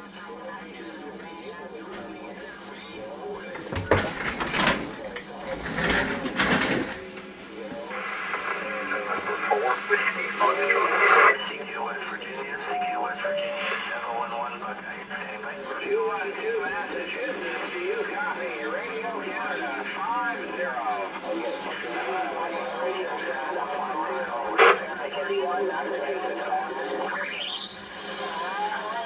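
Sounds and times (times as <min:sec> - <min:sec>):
garbled radio voices: 0:00.0 - 0:29.0
radio static bursts: 0:07.8 - 0:29.0.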